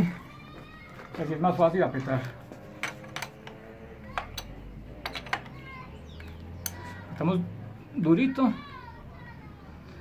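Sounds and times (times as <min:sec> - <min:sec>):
wrench clinking against metal: 0:04.2 - 0:05.6.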